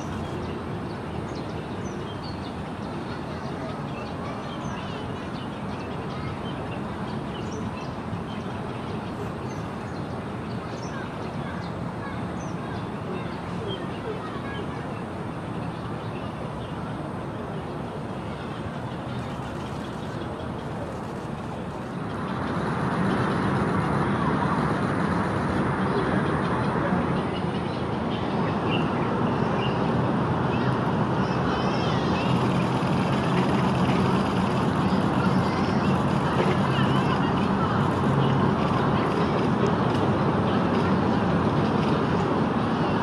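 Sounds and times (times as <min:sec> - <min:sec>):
distant road traffic: 0:00.0 - 0:43.0.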